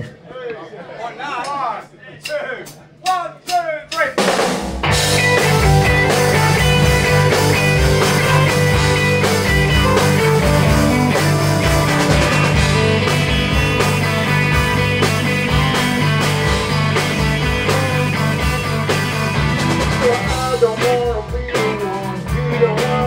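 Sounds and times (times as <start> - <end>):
live rock band playing: 4.2 - 23.0.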